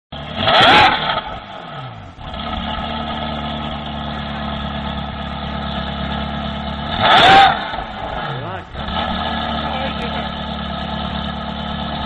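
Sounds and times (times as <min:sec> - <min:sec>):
car engine revving then idling: 0:00.1 - 0:12.0.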